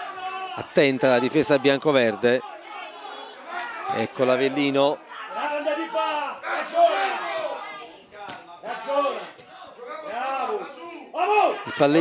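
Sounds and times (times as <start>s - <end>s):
voices shouting and calling out: 0.0s - 12.0s.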